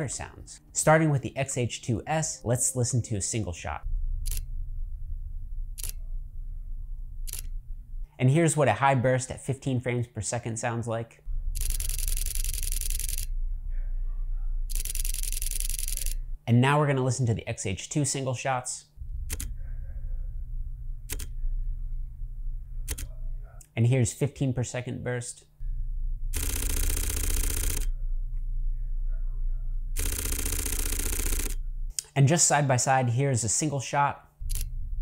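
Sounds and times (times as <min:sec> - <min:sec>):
camera shutter burst clicks: 0:26.4 - 0:27.9, 0:30.0 - 0:31.6, 0:34.4 - 0:34.7.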